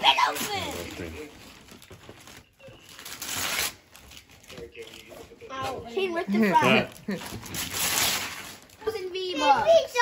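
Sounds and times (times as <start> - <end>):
wrapping paper tearing: 2.9 - 5.1, 6.7 - 9.1
excited high-pitched voices: 8.8 - 10.0.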